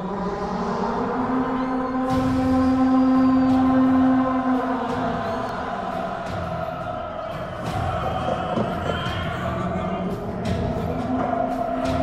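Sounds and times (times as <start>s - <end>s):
orchestral sustained chords: 0.0s - 7.1s.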